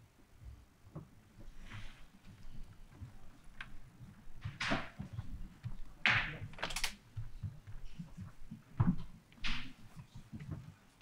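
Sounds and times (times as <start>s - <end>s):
crackle of clicks: 6.1s - 7.0s.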